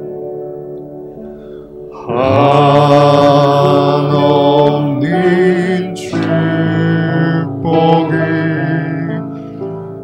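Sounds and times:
man singing a worship song: 0:02.0 - 0:09.5.

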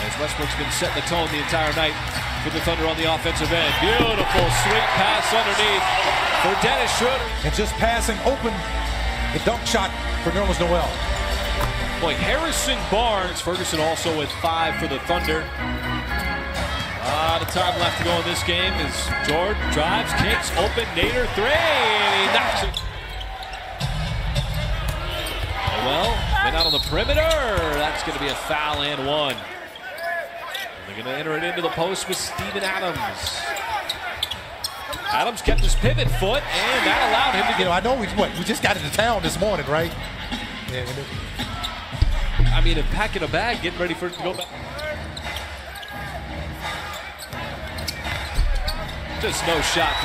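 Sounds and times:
indoor arena rumble: 0:00.0 - 0:50.0
basketball dribbling on hardwood: 0:04.0 - 0:04.8.

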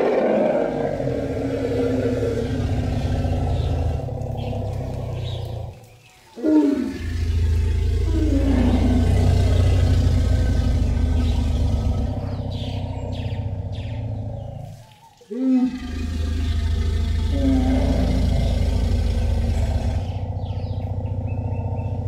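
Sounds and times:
elephant rumble: 0:00.0 - 0:22.0.

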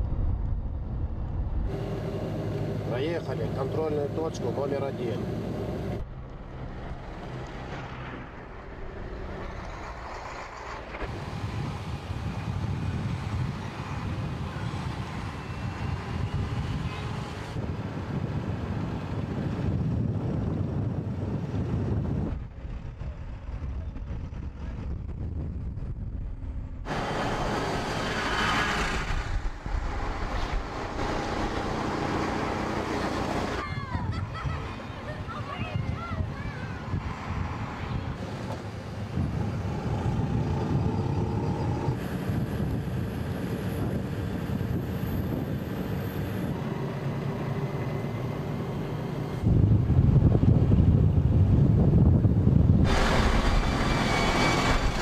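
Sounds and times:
vehicle engine and road noise: 0:00.0 - 0:55.0
wind buffeting microphone: 0:05.9 - 0:47.4, 0:49.2 - 0:55.0.

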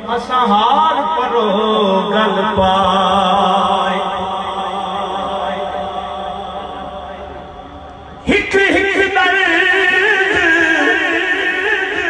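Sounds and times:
held vocal drone over loudspeaker: 0:00.0 - 0:12.0.

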